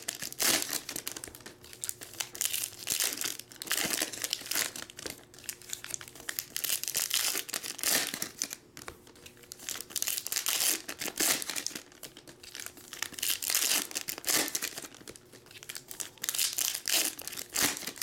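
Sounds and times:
foil wrappers crinkling: 0.0 - 18.0.

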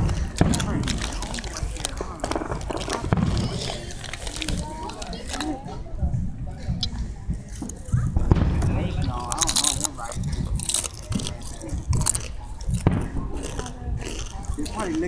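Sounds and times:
fireworks cracking: 0.0 - 13.6
indistinct voices talking: 0.0 - 15.0.

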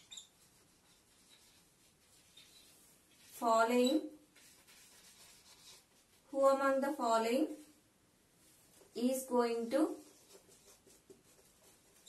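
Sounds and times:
marker writing on whiteboard: 0.0 - 6.4, 9.7 - 12.0.

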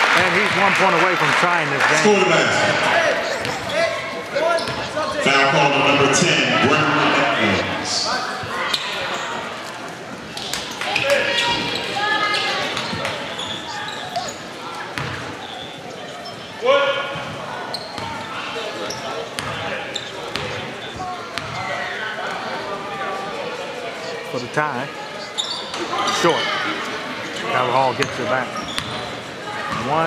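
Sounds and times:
voices and shouts: 0.0 - 9.7, 10.6 - 18.9.

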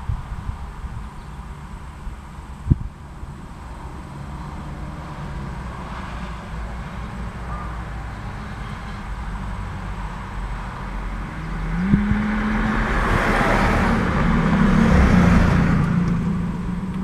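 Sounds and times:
car driving past: 1.5 - 17.0.

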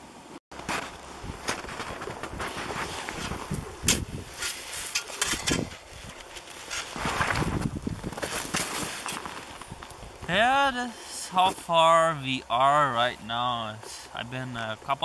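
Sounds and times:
clothing rustle: 0.6 - 10.0
snow crunching and scraping: 0.6 - 14.7.

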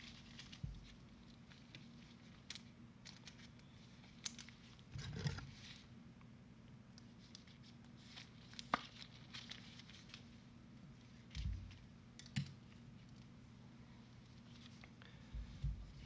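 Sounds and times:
packaging rustle: 7.2 - 10.4.

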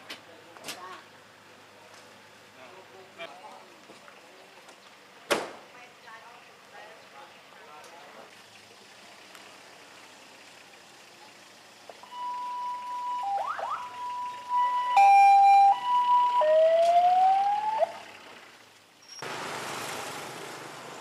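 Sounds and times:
traffic noise: 0.0 - 21.0
wind: 0.0 - 21.0
ambulance siren: 12.0 - 18.1.

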